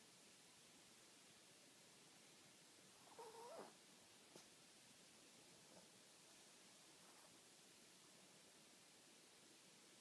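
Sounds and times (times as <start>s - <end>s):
dog whimpering: 3.0s - 3.8s.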